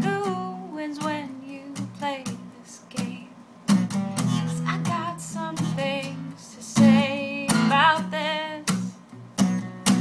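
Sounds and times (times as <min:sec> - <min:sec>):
woman singing: 0:00.0 - 0:03.4, 0:04.4 - 0:09.0
strummed acoustic guitar: 0:00.0 - 0:10.0.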